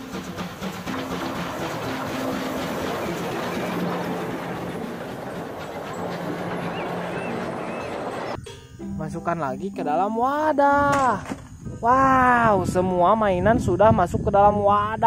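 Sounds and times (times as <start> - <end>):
wheels clattering over rails: 0.0 - 8.4
train rumbling past: 0.0 - 9.4
background music with low notes: 0.0 - 11.8.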